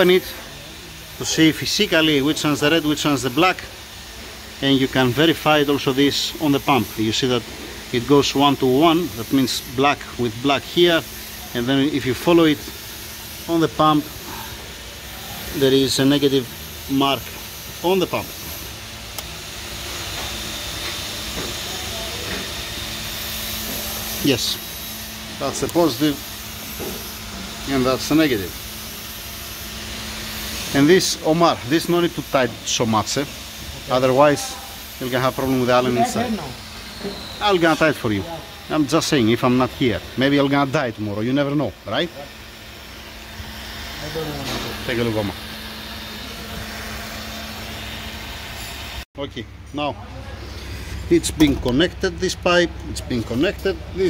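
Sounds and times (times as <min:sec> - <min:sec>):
machine hissing: 0:00.0 - 0:49.1.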